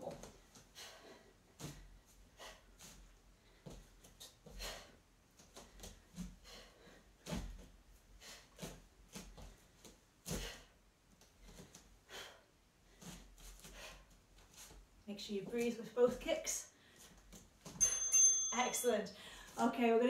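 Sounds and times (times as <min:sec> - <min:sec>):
bare feet thudding on foam mats: 0:02.8 - 0:06.5, 0:07.2 - 0:11.9.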